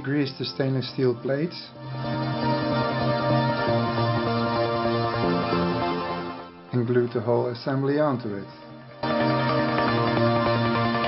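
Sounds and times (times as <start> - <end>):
background music with held chords: 0.0 - 11.0.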